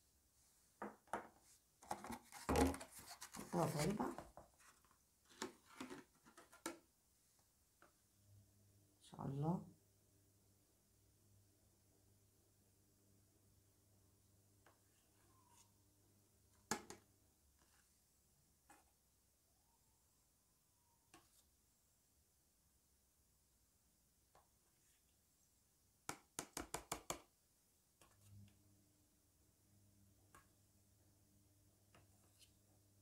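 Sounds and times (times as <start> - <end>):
spoon tapping plastic container: 26.1 - 27.3.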